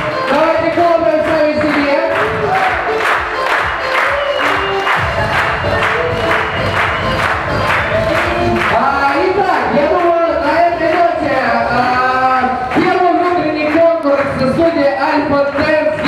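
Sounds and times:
song with singing: 0.0s - 9.6s
crowd clapping in rhythm: 0.0s - 16.0s.

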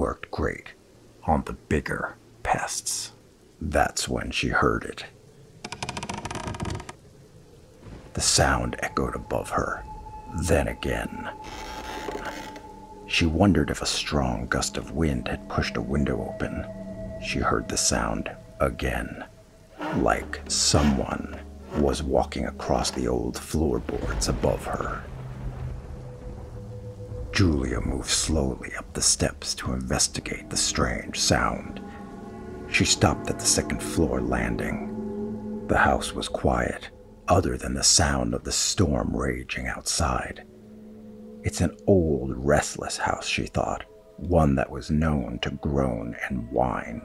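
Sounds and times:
wooden floorboards creaking: 5.6s - 7.0s, 11.4s - 12.6s
low rumbling drone: 8.1s - 47.0s
faint high held tone: 12.6s - 23.6s.

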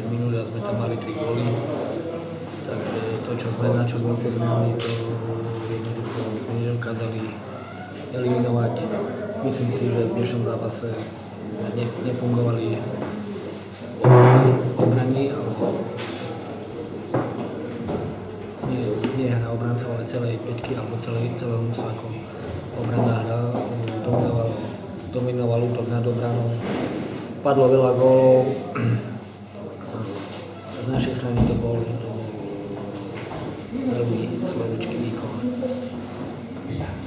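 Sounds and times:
man speaking: 2.6s - 7.5s, 8.1s - 13.0s, 18.6s - 26.6s, 27.4s - 33.0s, 33.7s - 35.6s.

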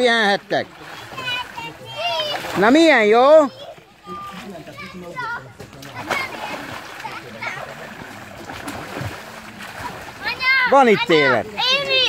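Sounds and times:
water splashing in pool: 0.0s - 12.0s.

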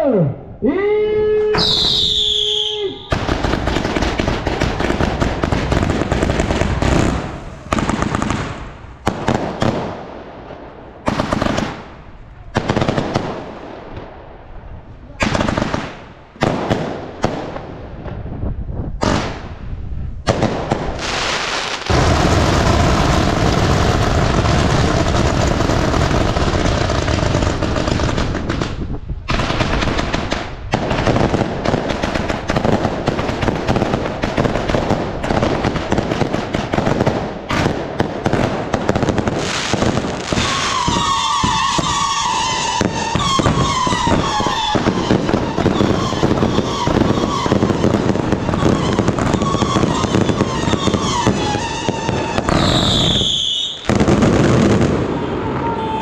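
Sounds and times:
whistling fireworks: 0.8s - 14.2s, 20.2s - 56.0s
fireworks bangs and crackling: 1.6s - 56.0s.

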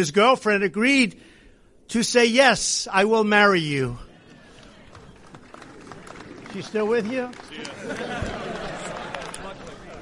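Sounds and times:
crowd murmur: 4.0s - 10.0s.

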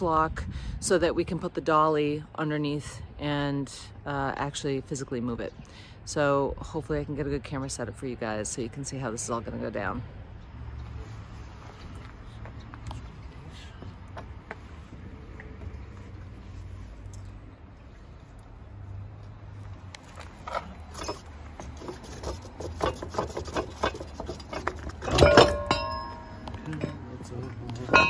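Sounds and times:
metal clinking and rattling: 20.4s - 27.0s, 27.8s - 28.0s
loud ringing metal clank: 25.0s - 27.0s.

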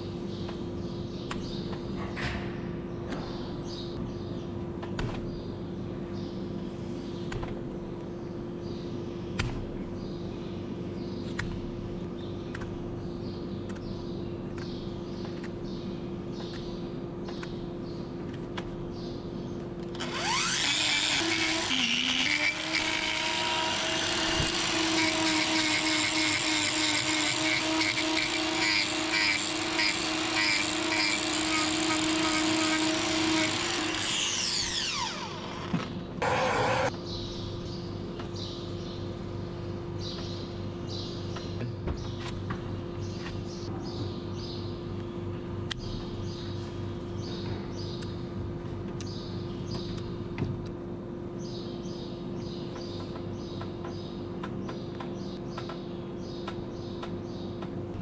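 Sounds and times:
angle grinder grinding hoof: 20.0s - 36.9s
grinder motor winding down: 20.0s - 36.9s.

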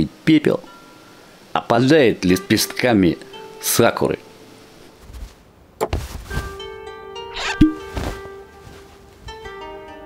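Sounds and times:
plucked-string music: 6.0s - 10.0s.

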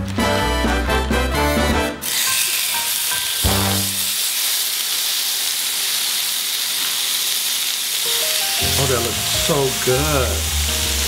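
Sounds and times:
meat sizzling in frying pan: 2.0s - 11.0s.

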